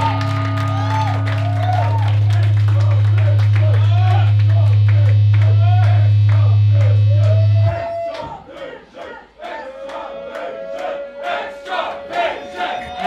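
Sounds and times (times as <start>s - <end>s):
low amplified band note: 0.0s - 8.1s
crowd shouting and cheering: 0.0s - 13.0s.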